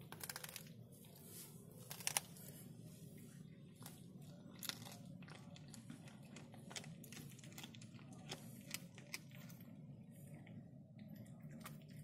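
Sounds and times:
low steady hum: 0:00.0 - 0:12.0
cat chewing with faint clicks: 0:03.8 - 0:09.8.

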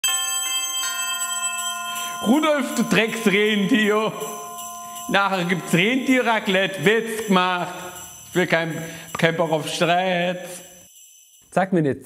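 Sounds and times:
ringing bell notes: 0:00.0 - 0:11.5.

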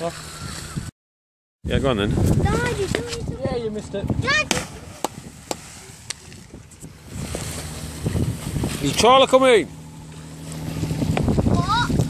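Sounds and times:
wind on microphone: 0:00.3 - 0:00.9, 0:01.6 - 0:09.3, 0:10.6 - 0:12.0
churning water: 0:01.8 - 0:12.0.

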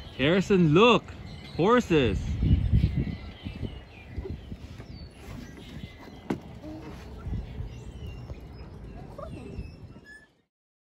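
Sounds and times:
wind rumbling on microphone: 0:00.0 - 0:10.3.

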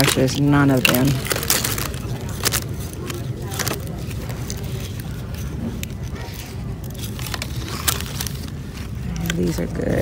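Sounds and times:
store background rumble: 0:00.0 - 0:10.0.

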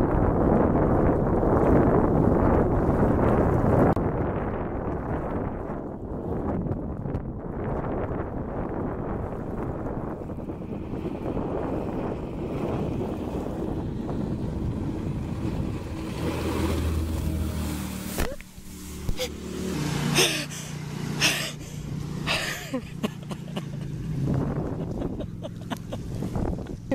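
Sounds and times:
wind noise on microphone: 0:00.0 - 0:19.8, 0:23.3 - 0:26.9
jet boat engine and jet wash: 0:08.2 - 0:26.9
wake splashing on shore: 0:14.8 - 0:22.0.

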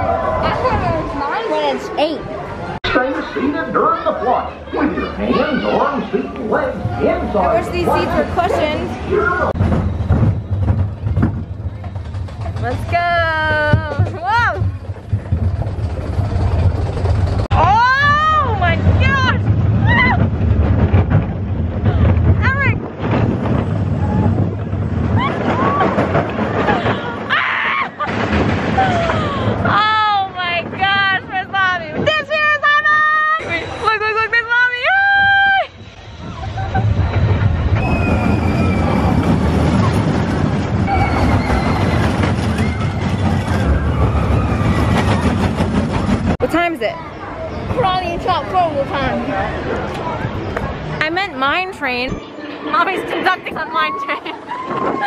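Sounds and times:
roller coaster train rumbling: 0:00.0 - 0:55.0
riders screaming and whooping: 0:17.5 - 0:20.6, 0:23.8 - 0:30.1, 0:34.8 - 0:45.7, 0:53.9 - 0:55.0
faint wheel squeals: 0:35.5 - 0:39.3.

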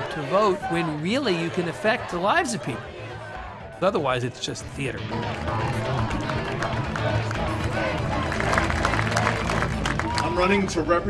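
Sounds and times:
background music: 0:00.0 - 0:11.0
murmur of crowd talking: 0:00.0 - 0:11.0.

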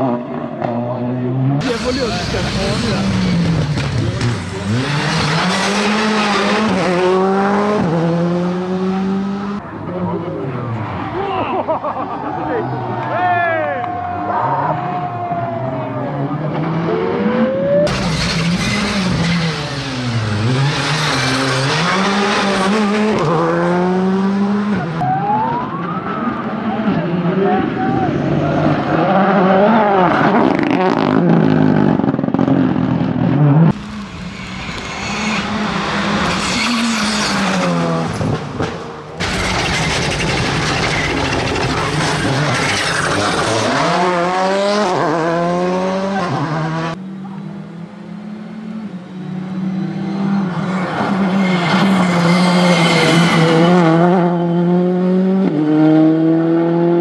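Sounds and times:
rally car engines revving: 0:00.0 - 0:57.0.

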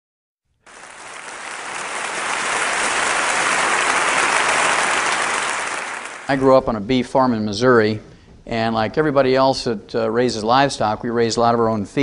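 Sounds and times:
audience applauding: 0:00.7 - 0:06.4.

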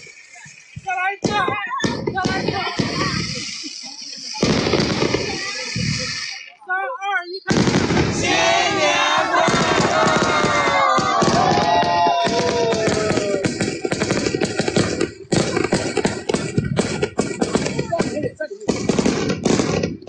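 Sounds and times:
fireworks crackling: 0:00.0 - 0:20.0
crowd shouting and cheering: 0:07.6 - 0:18.0.

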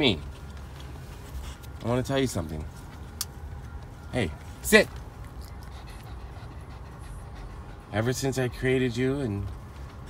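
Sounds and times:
low steady hum: 0:00.0 - 0:10.0
dog panting: 0:04.9 - 0:10.0.

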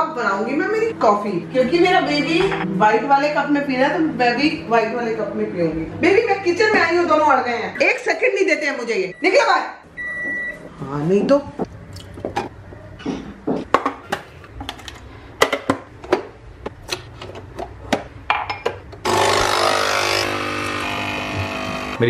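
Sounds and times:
coffee machine pump buzzing: 0:19.0 - 0:22.0.

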